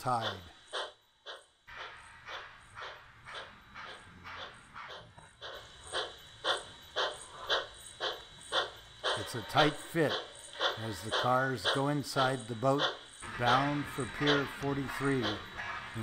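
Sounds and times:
model steam train chuffing: 0.0s - 16.0s.

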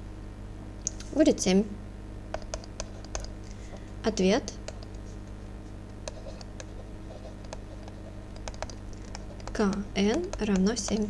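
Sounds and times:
woman speaking: 1.0s - 1.8s, 4.0s - 4.6s, 9.5s - 11.0s
light clicks and taps: 7.4s - 11.0s.

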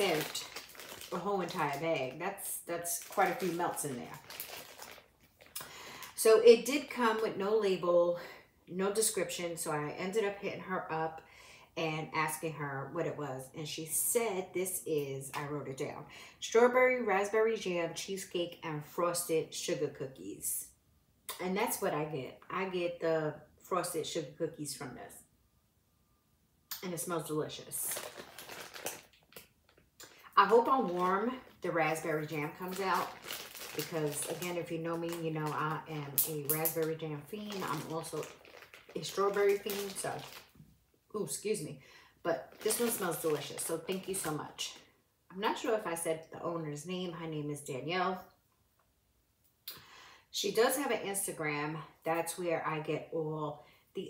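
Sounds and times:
plastic bag rustling: 0.0s - 5.7s, 27.7s - 40.6s, 42.3s - 44.6s.

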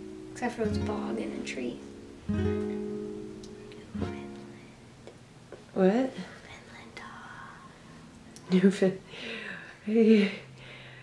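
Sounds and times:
person talking: 0.4s - 1.8s
soft whispered speech: 6.1s - 7.8s.

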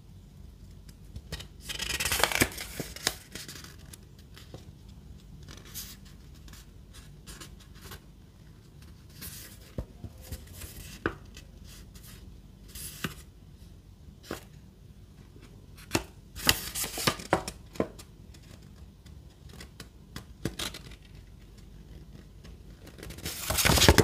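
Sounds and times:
paper rustling: 1.6s - 4.6s, 15.9s - 17.4s, 22.0s - 24.0s.

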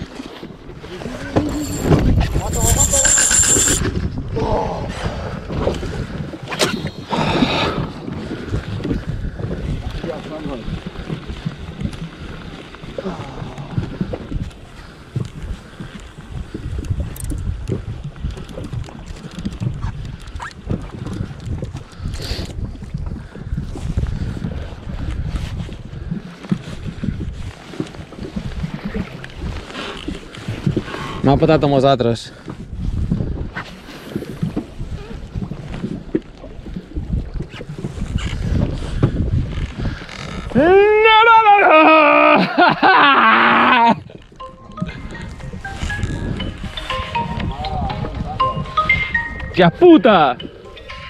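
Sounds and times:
wind buffeting microphone: 0.0s - 41.0s, 43.9s - 51.0s.

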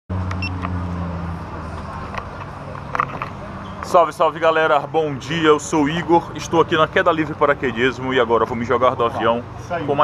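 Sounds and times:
low engine hum: 0.1s - 10.0s.

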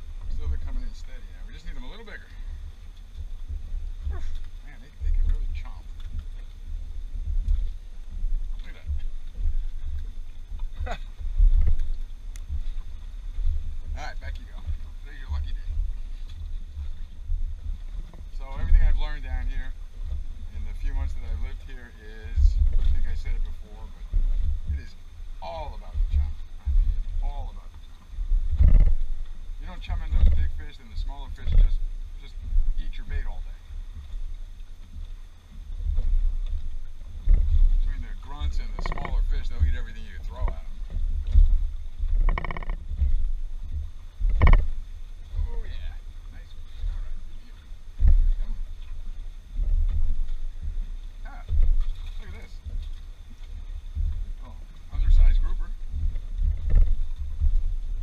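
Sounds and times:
wind buffeting microphone: 0.0s - 58.0s
sharp knocks: 38.6s - 39.8s, 41.3s - 43.2s, 44.2s - 44.8s.

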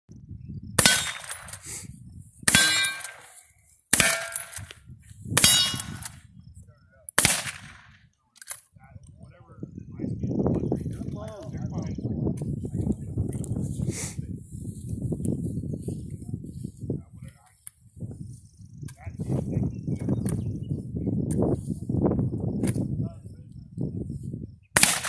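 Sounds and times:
rifle shots: 0.8s - 1.6s, 2.5s - 3.3s, 3.9s - 4.7s, 5.4s - 6.2s, 7.2s - 8.0s, 24.8s - 25.0s
ring of struck steel target: 2.5s - 3.2s, 4.0s - 4.6s, 5.4s - 6.1s.

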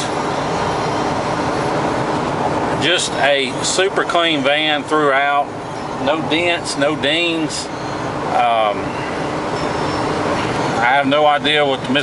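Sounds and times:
road and wind noise in van: 0.0s - 12.0s.

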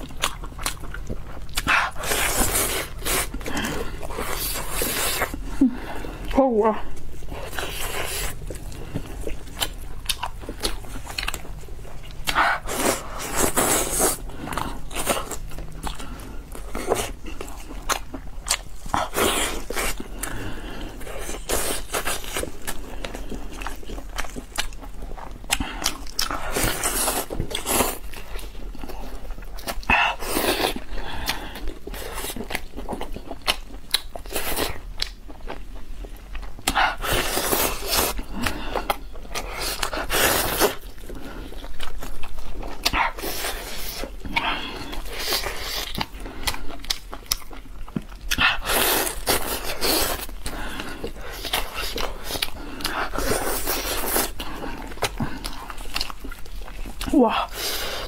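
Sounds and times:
steady low hum: 0.0s - 33.9s
biting and chewing meat: 0.0s - 58.0s.

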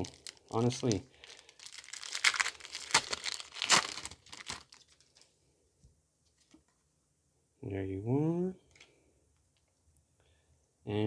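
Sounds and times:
foil wrapper tearing and crinkling: 0.0s - 5.3s.

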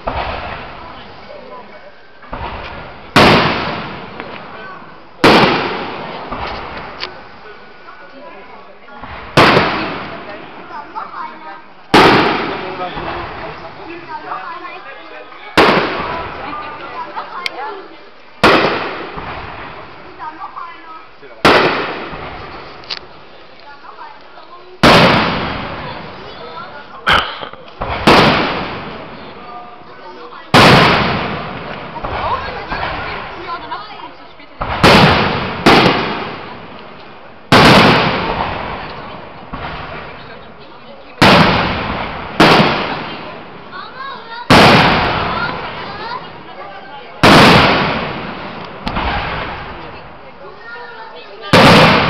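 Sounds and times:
firework shells bursting: 0.0s - 1.1s, 2.2s - 7.6s, 9.0s - 11.2s, 11.8s - 14.2s, 15.5s - 17.8s, 18.4s - 20.6s, 21.4s - 29.5s, 30.4s - 52.0s.

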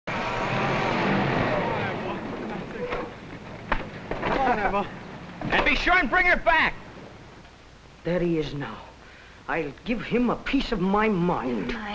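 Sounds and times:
car engine running: 0.1s - 5.4s.

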